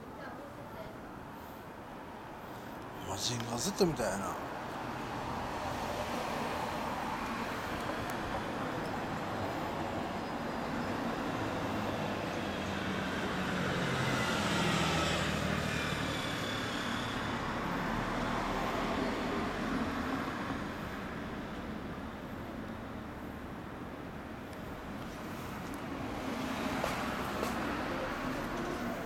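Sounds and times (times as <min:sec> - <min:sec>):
background traffic: 0:00.0 - 0:29.0
vehicle passing: 0:25.0 - 0:29.0.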